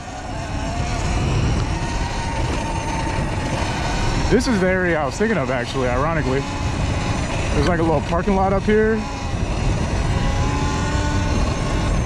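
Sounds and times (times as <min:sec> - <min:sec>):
electric motor whine: 0:00.0 - 0:12.0
tyres on loose dirt: 0:00.0 - 0:12.0
wind rumble: 0:00.0 - 0:12.0.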